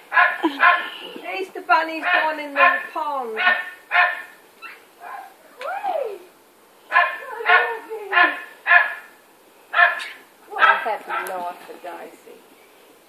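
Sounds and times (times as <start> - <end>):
dog barking: 0.1 - 0.9, 2.0 - 5.3, 6.9 - 9.1, 9.7 - 11.3
faint dog calls: 6.9 - 11.3.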